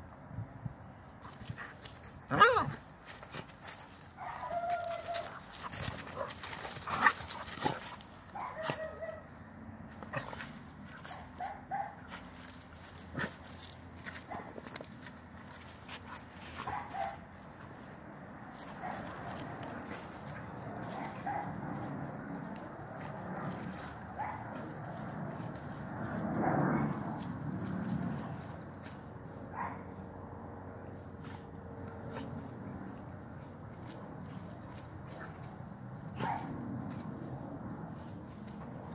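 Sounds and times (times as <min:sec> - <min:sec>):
dogs scuffling on grass: 0:01.2 - 0:09.0, 0:09.9 - 0:29.7, 0:30.9 - 0:38.9.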